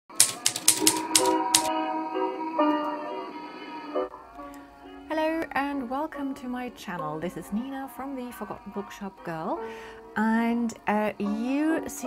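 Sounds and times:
typewriter keys clacking: 0.1s - 1.7s
gentle music with held notes: 0.8s - 12.0s.

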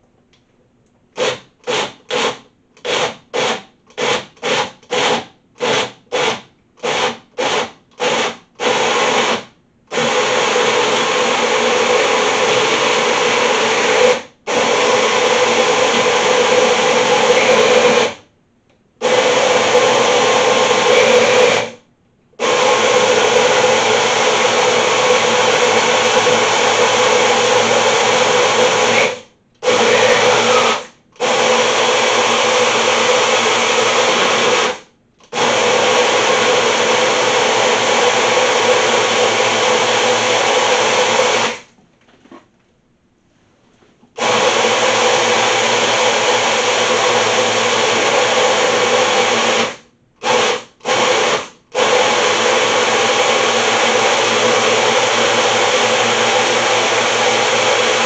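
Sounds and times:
blender running: 1.2s - 18.2s, 19.0s - 21.8s, 22.4s - 41.7s, 44.2s - 58.0s.

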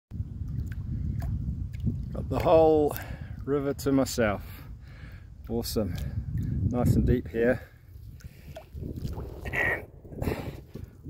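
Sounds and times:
low rumbling microphone noise: 0.1s - 3.6s, 6.0s - 11.0s.

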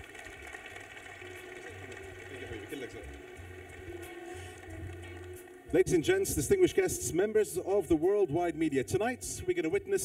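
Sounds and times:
audience applauding: 0.0s - 5.6s.

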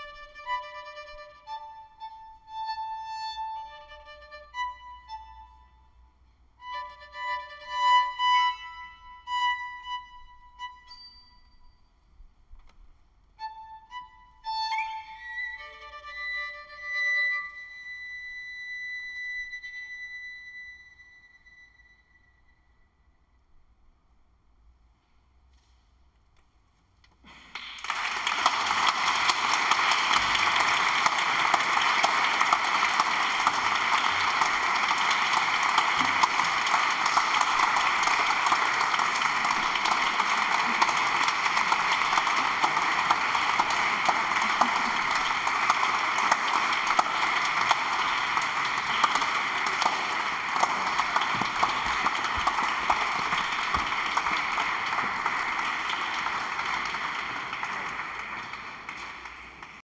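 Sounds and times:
audience applauding: 27.2s - 59.8s.

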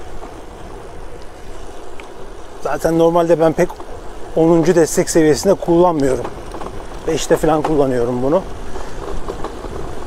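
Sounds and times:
bicycle tyres rolling on road: 0.0s - 10.0s
wind rush over microphone: 0.0s - 10.0s.

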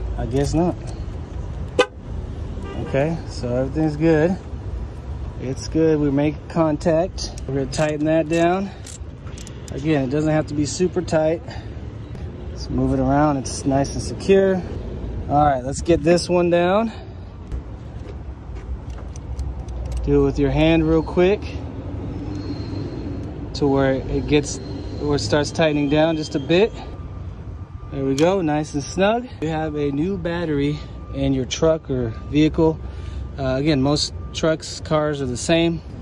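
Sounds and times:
car horn chirp: 1.7s - 3.2s.

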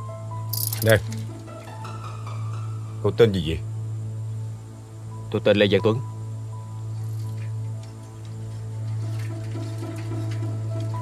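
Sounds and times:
soft background music: 0.0s - 11.0s
high rattling burst: 0.5s - 1.0s.

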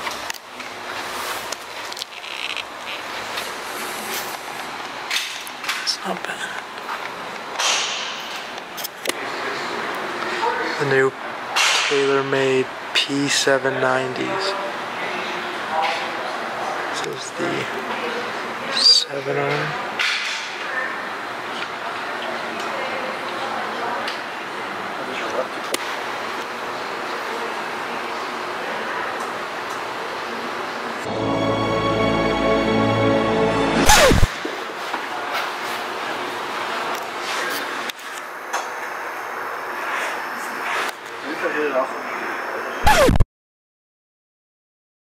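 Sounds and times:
shop interior hiss: 0.0s - 2.0s, 2.7s - 19.9s, 24.4s - 43.2s
music: 31.0s - 34.3s.

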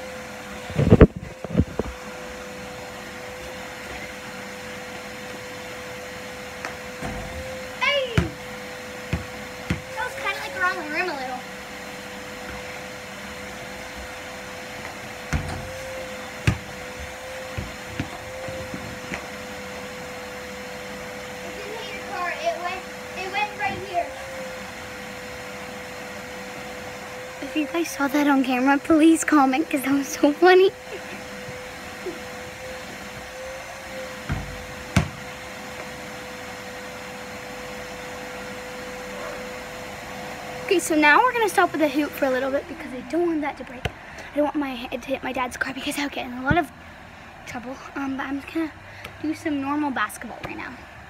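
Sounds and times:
vacuum cleaner whine: 0.0s - 51.0s
basketball thudding: 8.1s - 8.4s, 9.1s - 9.9s, 15.3s - 15.8s, 16.4s - 19.3s, 34.3s - 35.2s.

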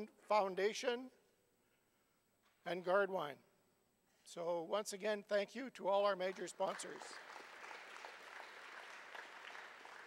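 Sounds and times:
audience clapping: 6.2s - 10.0s.

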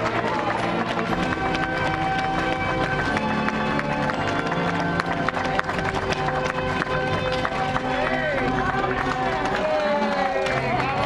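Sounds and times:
ceremonial band music: 0.0s - 11.0s
crowd clapping: 0.0s - 11.0s.

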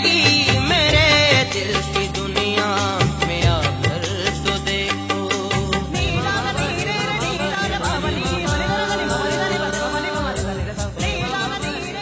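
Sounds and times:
harmonium: 0.0s - 12.0s
man singing ornamented run: 0.0s - 12.0s.

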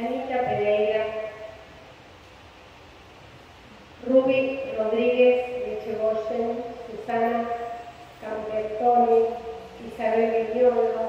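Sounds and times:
faint reverberant hum: 0.0s - 11.0s.

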